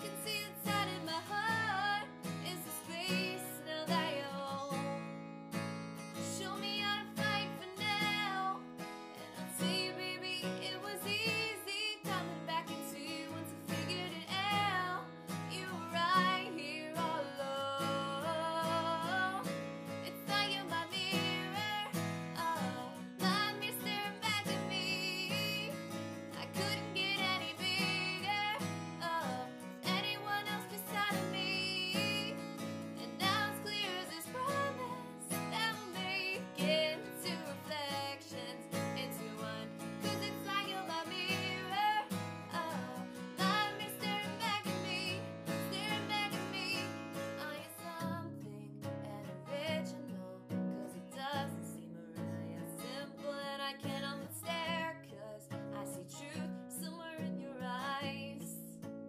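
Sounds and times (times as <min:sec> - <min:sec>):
woman singing a pop song: 0:00.0 - 0:58.9
strummed acoustic guitar: 0:00.0 - 0:59.0.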